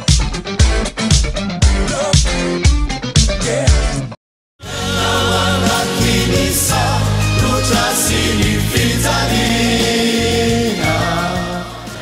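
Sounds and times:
instrumental backing with bass line: 0.0 - 12.0.

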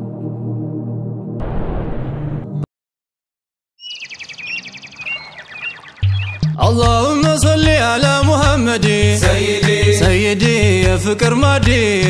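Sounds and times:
bird trilling: 3.8 - 6.6
bird chirping: 3.8 - 6.7.

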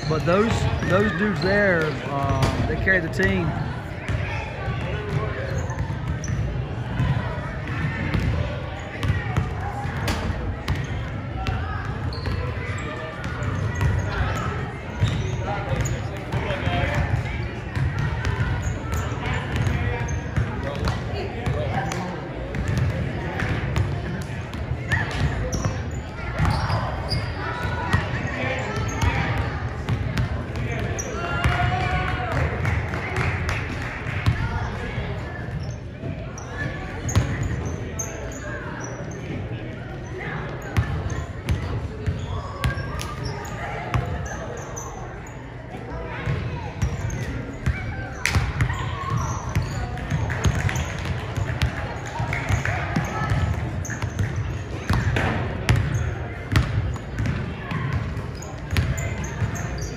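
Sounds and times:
indistinct chatter: 0.0 - 59.9.

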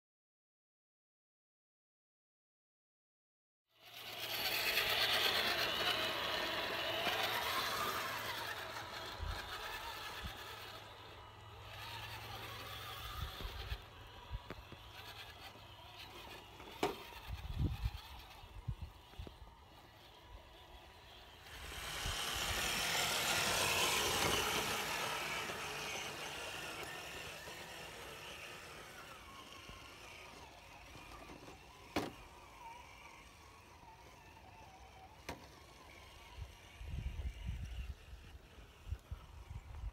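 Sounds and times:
electric motors whirring: 3.8 - 39.9.

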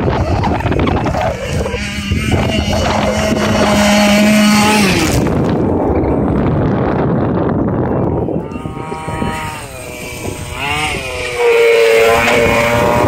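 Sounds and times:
rc buggy engine revving: 0.0 - 13.0.

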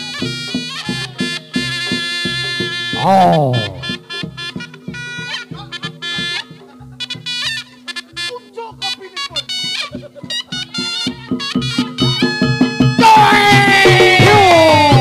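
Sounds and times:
regular drumming: 0.0 - 7.8
reedy shawm melody: 0.0 - 14.8.

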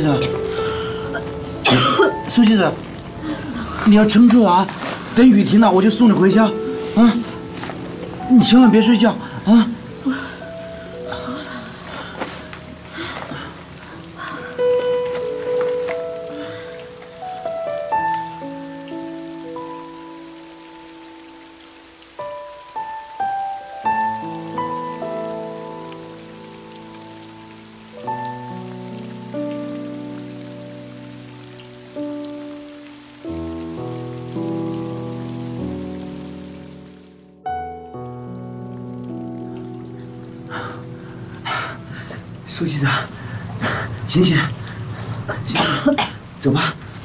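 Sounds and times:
soft background music: 0.0 - 42.9
heavy rain hiss: 0.0 - 47.0.

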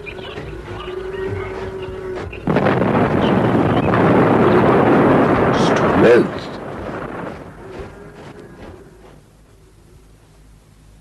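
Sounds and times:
house fire rushing noise: 0.0 - 10.4.

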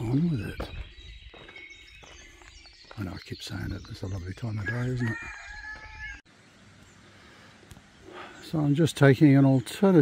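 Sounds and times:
cockerel crowing: 4.6 - 6.3.

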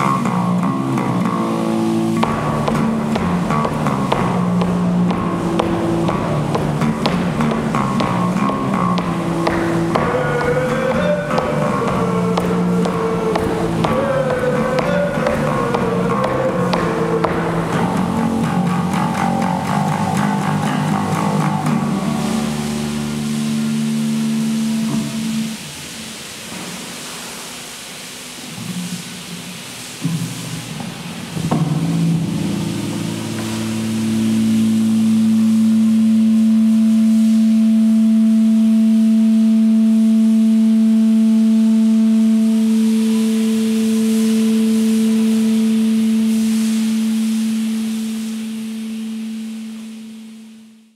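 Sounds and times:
plucked electric bass notes: 0.0 - 26.0, 31.4 - 50.9
low steady tone: 31.6 - 50.9.

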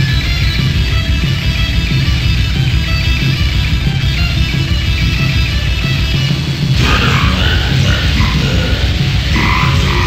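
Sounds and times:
heavy metal music: 0.0 - 10.0
growled vocal: 6.8 - 10.0.

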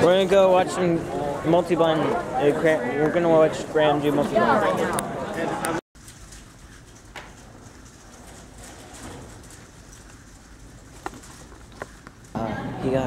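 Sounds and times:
busy hall room noise: 0.0 - 13.0.

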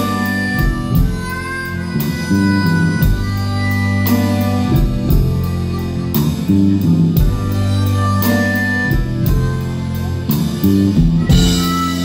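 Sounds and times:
guitar: 0.0 - 12.0
harmonica melody: 0.0 - 12.0
steady beat: 0.0 - 12.0.

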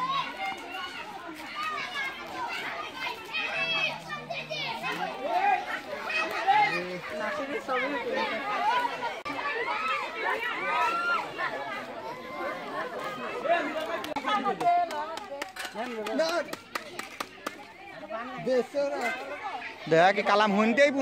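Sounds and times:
children chattering and shouting: 0.0 - 21.0.

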